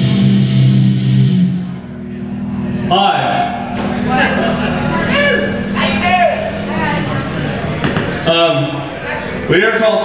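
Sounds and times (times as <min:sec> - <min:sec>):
electric guitar and bass chord: 0:00.0 - 0:09.6.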